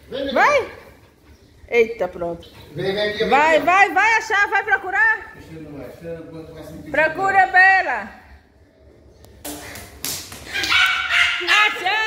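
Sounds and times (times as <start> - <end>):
small dog barking: 10.6 - 11.8.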